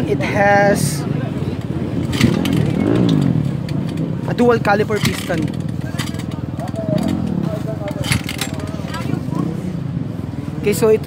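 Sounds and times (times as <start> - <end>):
faint voices: 0.0 - 11.0
motorcycle engine running steadily: 0.0 - 11.0.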